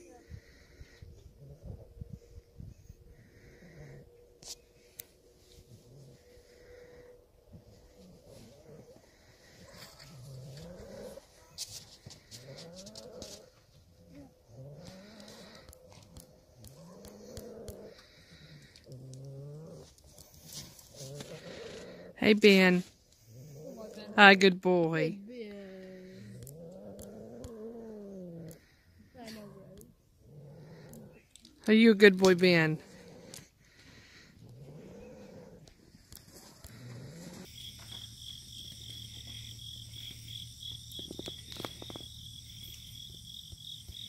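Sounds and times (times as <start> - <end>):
insects chirping: 36.7 - 44.0.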